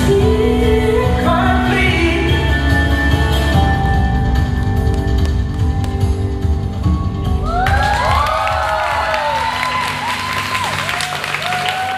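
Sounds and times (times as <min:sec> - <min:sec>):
bass-heavy dance music: 0:00.0 - 0:10.6
audience cheering and whooping: 0:07.4 - 0:11.9
audience clapping: 0:07.6 - 0:11.9.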